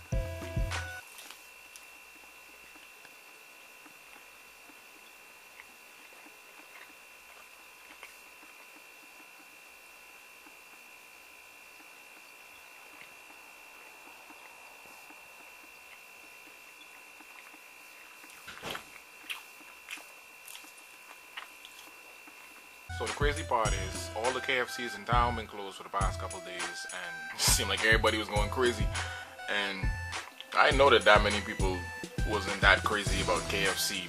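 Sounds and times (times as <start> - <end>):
faint high whine: 0.0 - 34.0
person chewing chicken: 3.8 - 9.6, 11.8 - 22.7.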